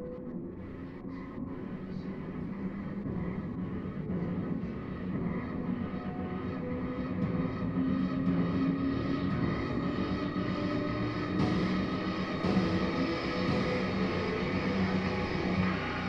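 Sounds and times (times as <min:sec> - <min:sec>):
low droning soundtrack rumble: 0:00.0 - 0:16.0.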